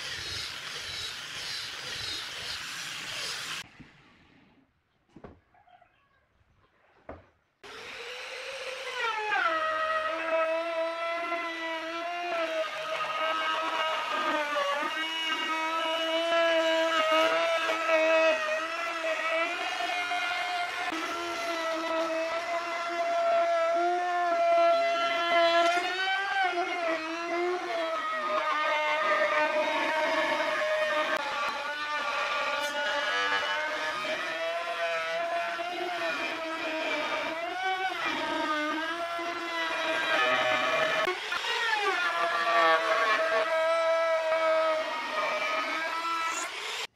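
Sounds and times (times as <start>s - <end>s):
electric router cutting wood: 0.0s - 3.6s, 7.6s - 46.9s.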